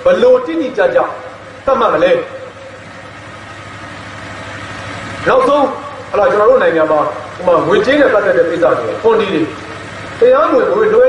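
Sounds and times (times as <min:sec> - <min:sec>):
low hum: 0:01.0 - 0:11.0.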